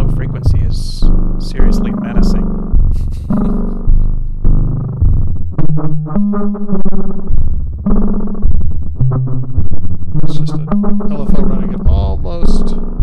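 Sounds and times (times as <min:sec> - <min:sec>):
synthesizer bass notes: 0:00.0 - 0:13.0.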